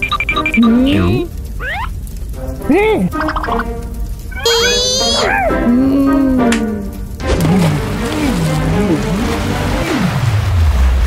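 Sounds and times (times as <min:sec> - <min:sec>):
warbling cry: 0:04.3 - 0:05.7
cartoon voice vocalizing: 0:04.4 - 0:06.5.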